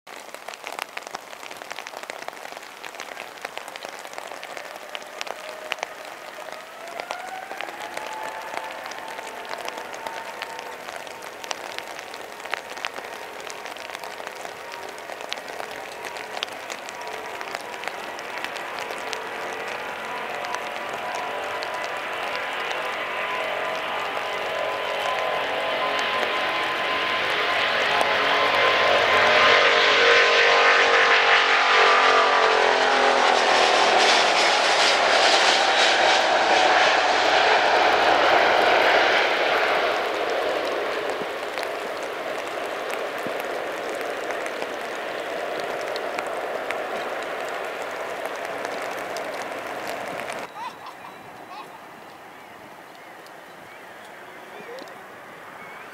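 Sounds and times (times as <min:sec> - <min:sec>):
jet engines whining at takeoff: 0:00.1 - 0:55.9.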